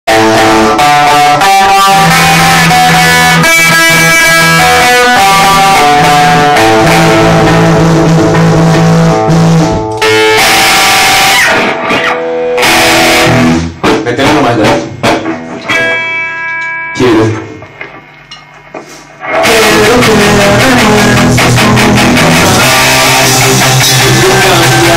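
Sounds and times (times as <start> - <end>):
drum kit: 0.1 - 16.4, 17.0 - 24.9
bass guitar: 0.1 - 24.9
electric guitars: 0.1 - 24.9.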